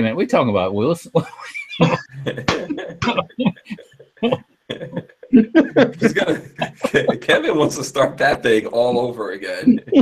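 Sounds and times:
men laughing hard: 1.2s - 10.0s
men coughing: 1.8s - 10.0s.

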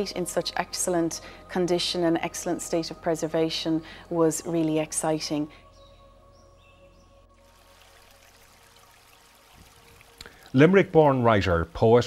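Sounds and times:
soft sustained music tones: 0.0s - 12.0s.

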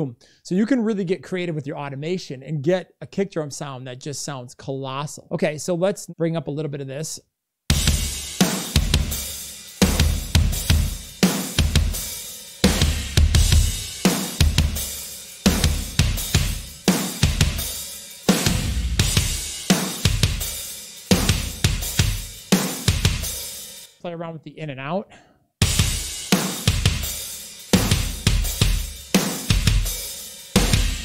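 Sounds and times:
drum kit playing: 7.7s - 24.0s, 25.6s - 31.0s.

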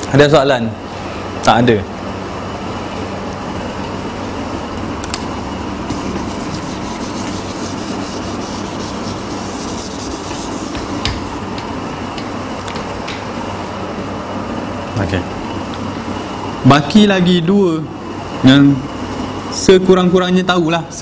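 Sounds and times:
air-conditioning hum: 0.0s - 21.0s
eraser rubbing whiteboard: 5.9s - 11.4s.

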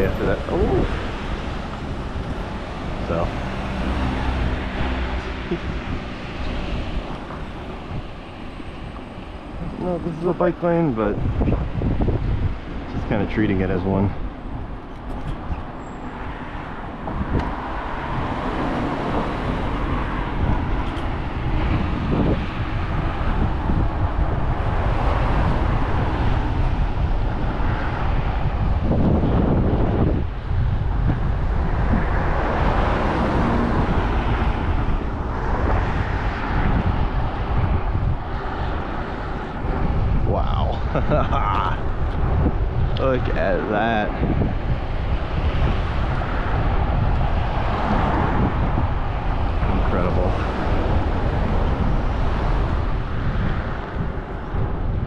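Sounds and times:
passing car traffic rumble: 0.0s - 55.0s
wind buffeting microphone: 0.0s - 55.0s.

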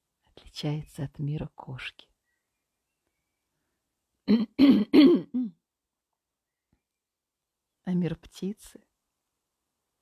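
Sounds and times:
woman clearing her throat: 4.3s - 5.6s.

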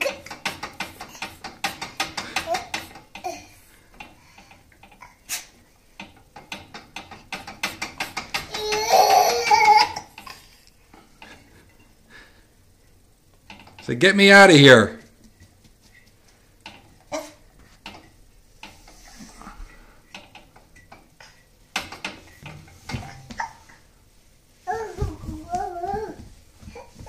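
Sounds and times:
metal baby gate rattling: 0.0s - 3.4s, 6.0s - 10.4s
baby's voice: 24.7s - 26.9s.

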